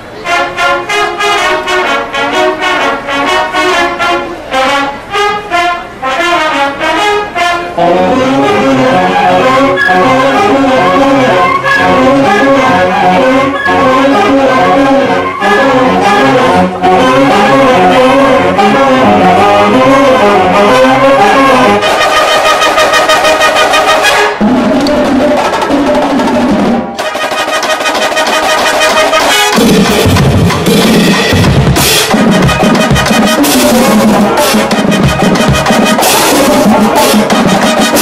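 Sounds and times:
marching band brass playing: 0.0 - 38.0
rapid even percussion: 8.2 - 38.0.

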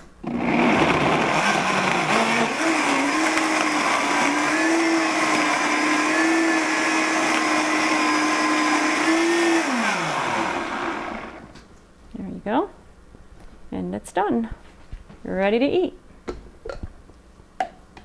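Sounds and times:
blender motor running: 0.2 - 11.5.

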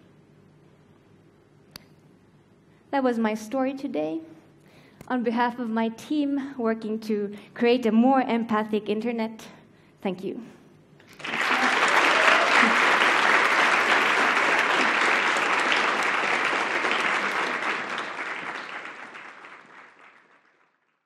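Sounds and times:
audience applause: 11.1 - 21.0.

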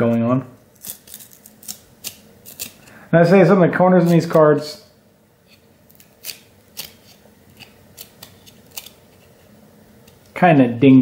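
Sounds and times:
cards clicking and snapping: 0.8 - 2.8, 5.9 - 9.0.

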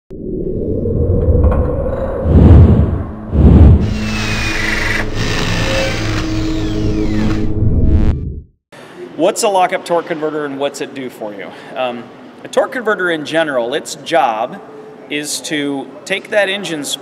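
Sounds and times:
low rumbling drone: 0.1 - 8.5.

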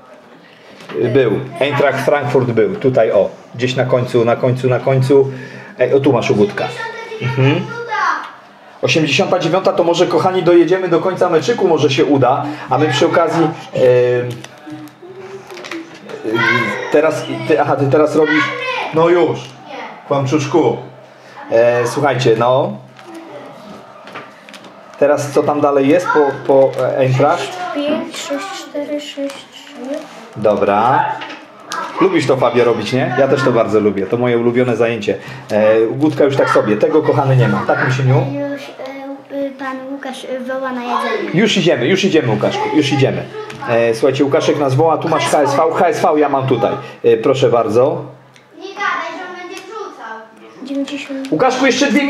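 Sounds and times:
indistinct voices talking: 1.1 - 52.0
plastic pages crinkling rustle: 14.2 - 16.1, 22.9 - 25.0, 26.3 - 32.2, 35.5 - 36.6.

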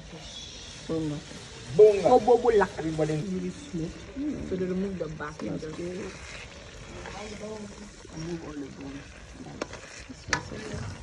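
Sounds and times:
soup sizzling in oil: 0.0 - 11.0
metal ladle stirring: 5.2 - 11.0.

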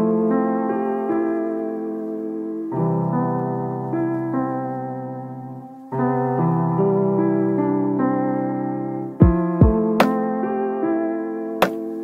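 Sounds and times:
soft electric piano chords: 0.0 - 12.0.

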